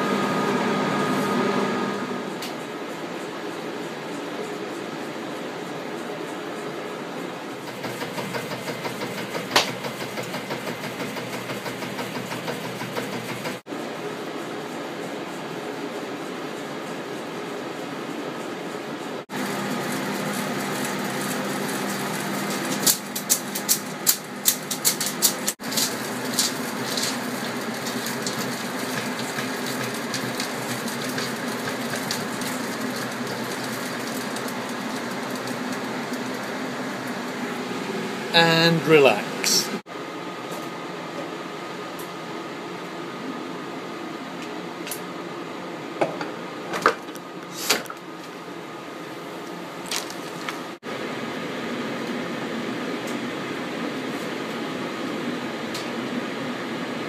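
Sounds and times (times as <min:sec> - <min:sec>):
film rewind motor whirring: 0:00.0 - 0:02.8, 0:19.3 - 0:38.3.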